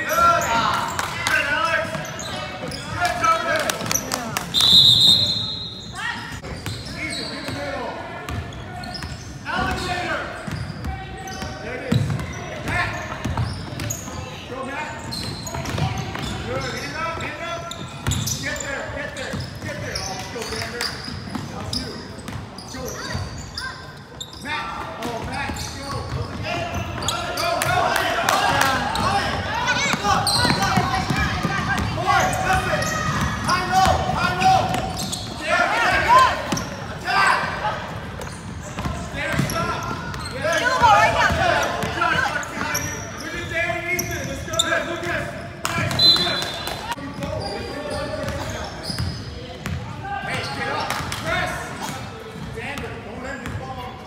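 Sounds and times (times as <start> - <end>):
voices echoing in hall: 0.0 - 54.0.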